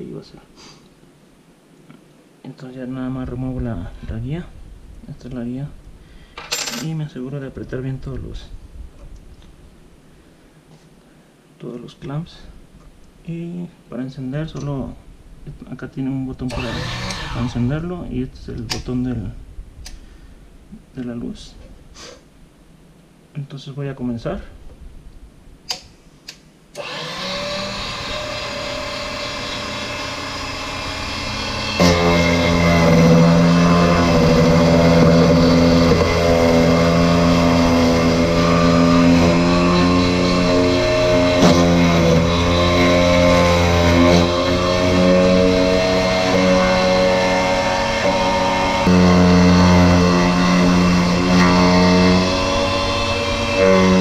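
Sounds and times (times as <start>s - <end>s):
key cutting machine motor: 16.5s - 17.4s, 26.8s - 54.0s.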